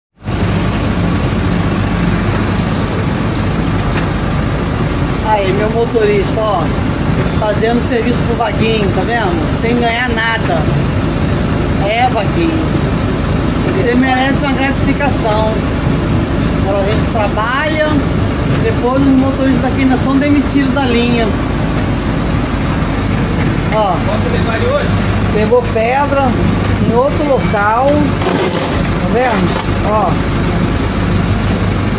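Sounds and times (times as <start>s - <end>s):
bus engine idling: 0.2s - 31.9s.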